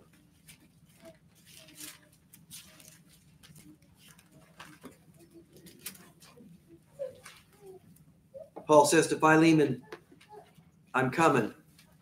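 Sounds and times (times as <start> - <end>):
pages being turned: 0.1 - 7.7.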